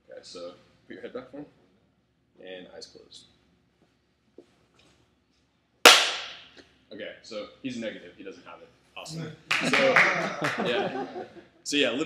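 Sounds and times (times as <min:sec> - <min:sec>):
loud hand clap with echo: 0:05.9 - 0:06.5, 0:09.5 - 0:10.8.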